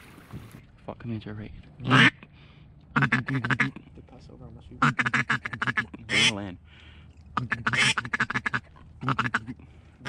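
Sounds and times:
duck call quacks: 1.8 - 2.3, 3.0 - 3.8, 4.8 - 6.5, 7.4 - 9.6.

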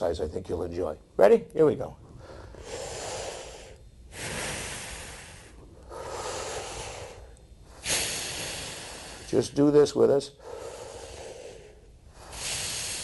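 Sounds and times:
deep breaths through open mouth: 2.1 - 9.4, 10.4 - 13.0.

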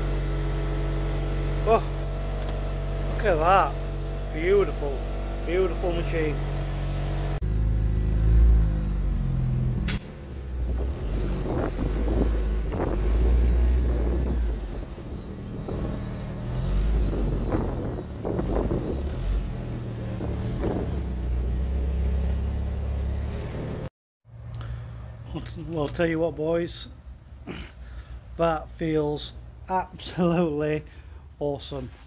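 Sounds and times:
car engine running at low revs: 0.0 - 23.9
engine crackles: 0.0 - 26.2.

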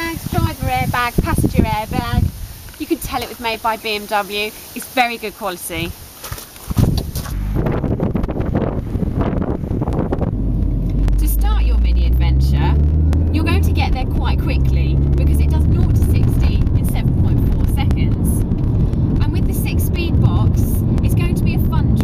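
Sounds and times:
car engine and road noise: 5.9 - 22.0.

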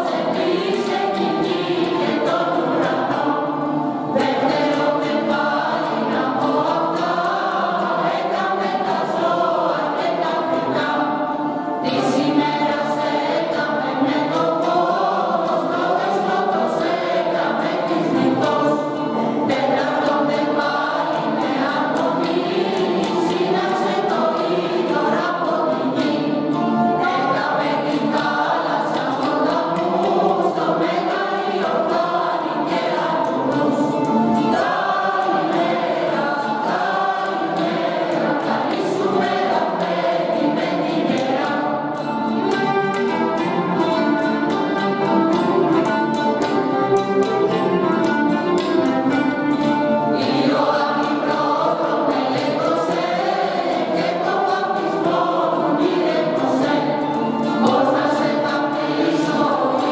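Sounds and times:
mixed choir singing a carol: 0.0 - 59.9
oud and kanun accompaniment: 0.0 - 59.9.

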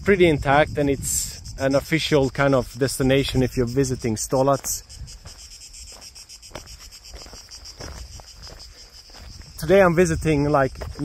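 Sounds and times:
wind rumble on microphone: 0.0 - 5.9, 7.7 - 11.0
insects chirring: 0.0 - 11.0.

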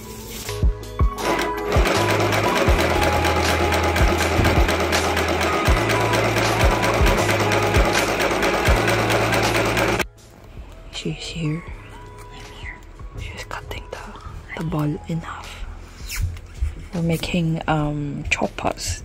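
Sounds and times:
background music: 0.0 - 19.0
sewing machine stitching: 1.2 - 10.0.

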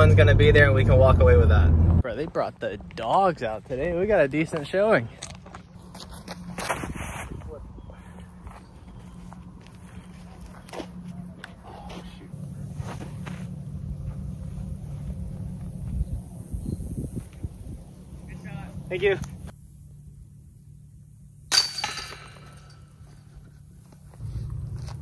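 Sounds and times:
steady low hum: 0.0 - 25.0
distant voices: 7.4 - 21.1.

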